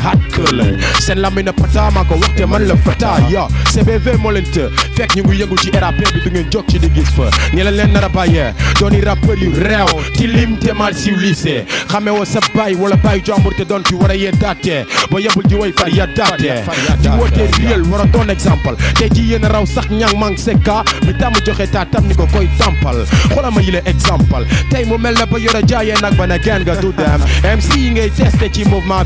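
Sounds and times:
heavy bass line: 0.0 - 11.2, 16.8 - 29.0
rapping over a drum beat: 0.0 - 29.0.

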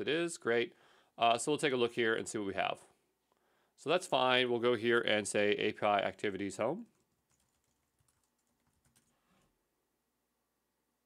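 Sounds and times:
soft keyboard keystrokes: 6.9 - 9.1.

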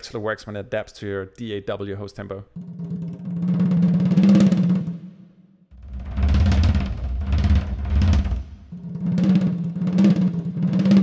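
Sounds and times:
rapid drum rolls: 2.6 - 5.0, 5.7 - 11.0
heavy low drums: 5.7 - 11.0.

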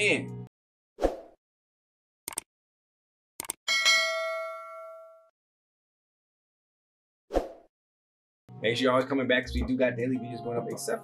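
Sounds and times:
notification bell ding: 3.7 - 5.2.

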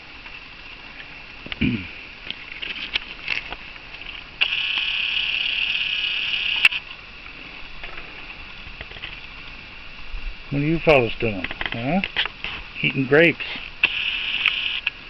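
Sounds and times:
night insects chirring: 0.0 - 15.0
small clicks: 2.3 - 7.0, 13.8 - 15.0
camcorder zoom motor whirring: 4.4 - 6.8, 13.8 - 14.9.

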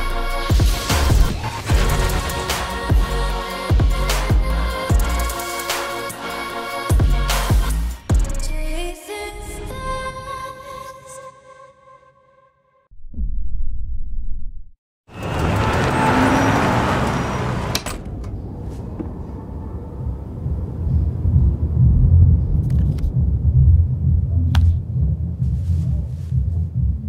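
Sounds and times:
low whooshing rumble: 18.2 - 27.0
throbbing bass rumble: 19.1 - 27.0.

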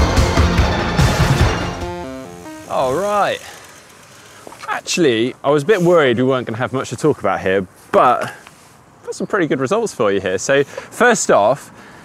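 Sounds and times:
music with heavy steady beat: 0.0 - 2.7.

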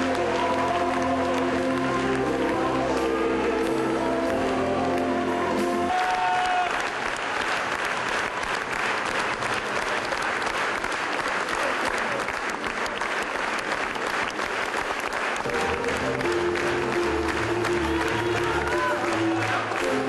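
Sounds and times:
music: 0.0 - 6.4, 15.2 - 20.0
audience applauding: 0.0 - 20.0.

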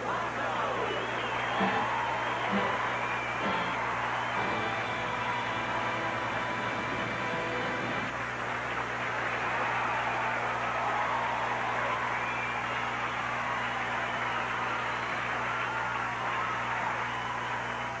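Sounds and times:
audience applauding: 0.0 - 18.0
low electrical hum: 0.0 - 18.0.

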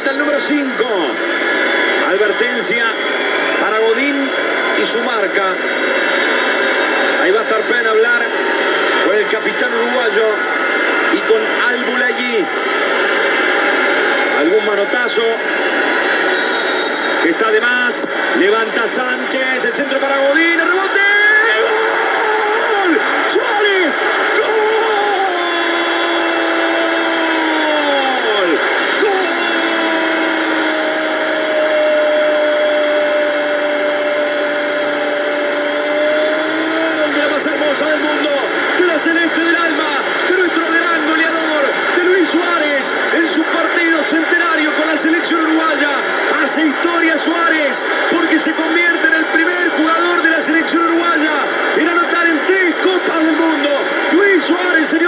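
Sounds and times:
stadium crowd cheering: 0.0 - 55.0
commentator shouting goal: 17.3 - 34.5, 35.7 - 55.0.

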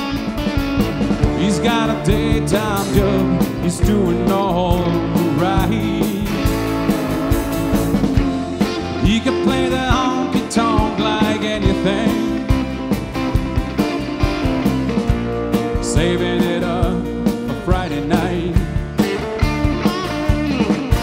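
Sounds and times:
electric bass: 0.0 - 21.0
electric lead guitar fills: 0.0 - 21.0
keyboard: 0.0 - 21.0
steady drum beat: 0.0 - 21.0.

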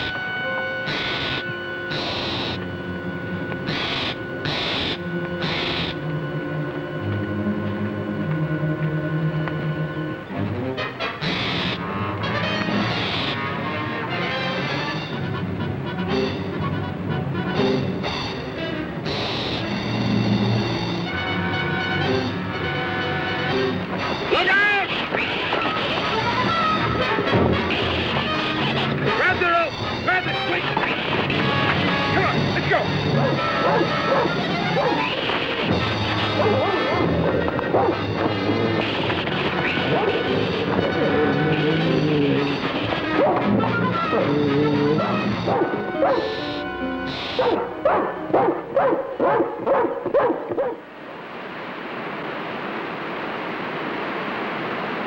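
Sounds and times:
film score music with held chords: 0.0 - 52.0.

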